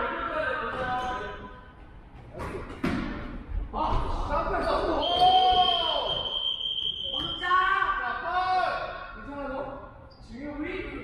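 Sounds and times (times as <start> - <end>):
players shouting in echoing gym: 2.4 - 11.0.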